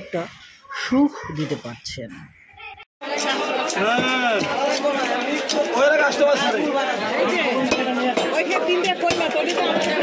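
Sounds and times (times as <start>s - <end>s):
loud chatter of many voices: 0.0s - 10.0s.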